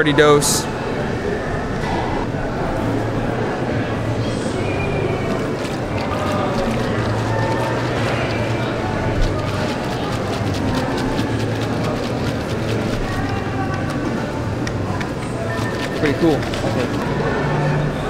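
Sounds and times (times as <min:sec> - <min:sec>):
murmur of distant voices: 0:00.0 - 0:18.0.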